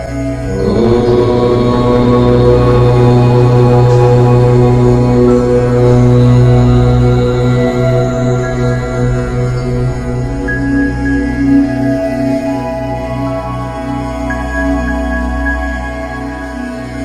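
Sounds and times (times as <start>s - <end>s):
meditation music drone: 0.0s - 17.0s
person chanting om: 0.0s - 17.0s.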